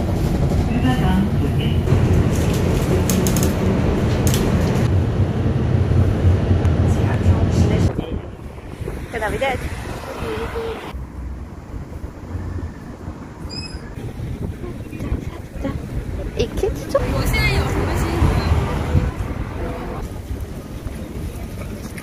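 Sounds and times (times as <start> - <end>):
low traffic rumble: 0.0 - 22.0
wind buffeting microphone: 0.0 - 22.0
people's voices: 6.8 - 11.0, 14.1 - 22.0.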